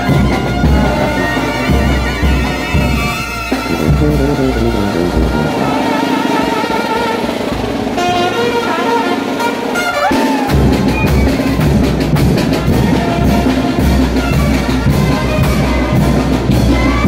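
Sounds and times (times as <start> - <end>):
bass drum: 0.0 - 5.9, 10.5 - 17.0
brass band playing: 0.0 - 17.0
drums: 0.0 - 17.0.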